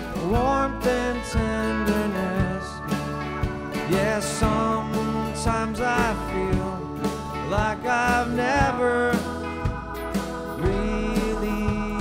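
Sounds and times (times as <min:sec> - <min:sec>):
acoustic folk-pop band: 0:00.0 - 0:12.0.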